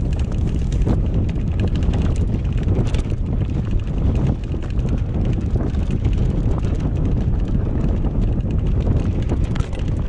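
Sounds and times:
bike clicks and rattles: 0.0s - 10.0s
tyres rolling over dirt: 0.0s - 10.0s
wind buffeting microphone: 0.0s - 10.0s.

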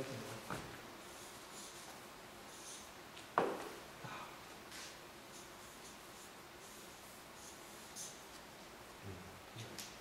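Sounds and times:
marker scratching on paper: 1.0s - 2.9s.

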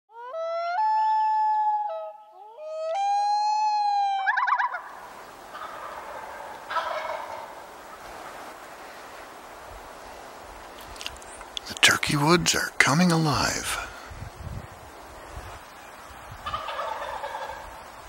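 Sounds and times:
woodland ambience: 0.1s - 18.0s
rattling gobble trill: 4.3s - 4.8s, 5.5s - 7.5s, 16.4s - 17.6s.

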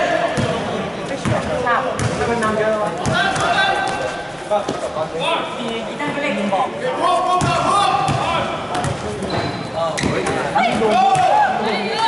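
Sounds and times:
basketball bouncing on court: 1.2s - 2.4s.

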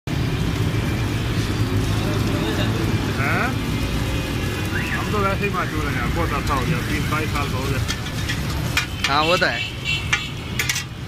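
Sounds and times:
batter sizzling on a griddle: 0.1s - 11.0s
street traffic rumble: 0.1s - 11.0s.

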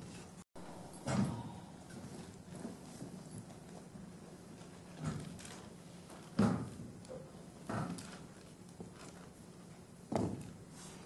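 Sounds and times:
knocks and footfalls: 6.2s - 7.0s, 10.1s - 10.6s.

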